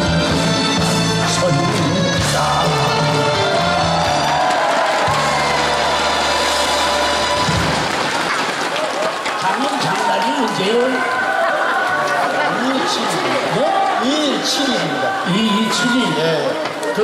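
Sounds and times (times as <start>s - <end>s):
live band playing: 0.0s - 8.0s
audience cheering and clapping: 1.8s - 17.0s.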